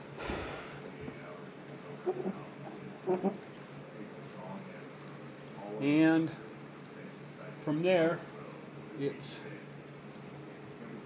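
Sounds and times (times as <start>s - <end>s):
person breathing noisily: 0.1s - 0.9s
faint murmurs: 0.4s - 7.6s.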